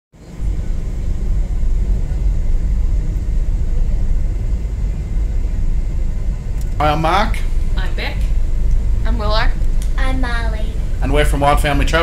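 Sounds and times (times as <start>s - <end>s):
car driving interior rumble: 0.2s - 12.0s.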